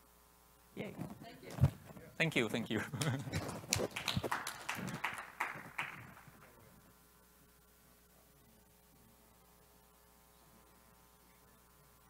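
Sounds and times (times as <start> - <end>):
short laugh: 2.8 - 3.6
audience applause: 2.8 - 6.6.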